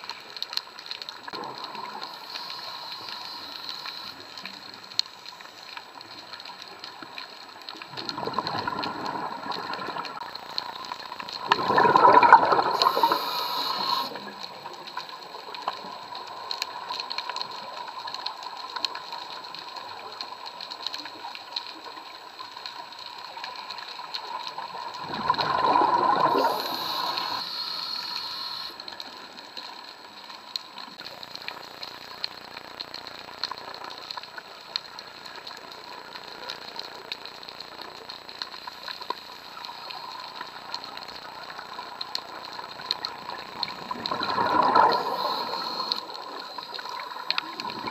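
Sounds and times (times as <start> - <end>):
light ticks: 0.0 - 11.5, 12.6 - 25.0, 26.5 - 47.9
faint steady hiss: 0.0 - 47.9
exhaled bubbles from regulator: 7.9 - 10.3, 11.3 - 14.3, 24.9 - 28.7, 43.1 - 47.9.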